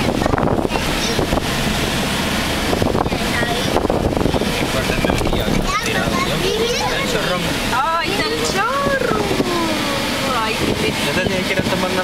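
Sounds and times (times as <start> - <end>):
car engine and road noise: 0.0 - 12.0
people talking and exclaiming: 2.7 - 12.0.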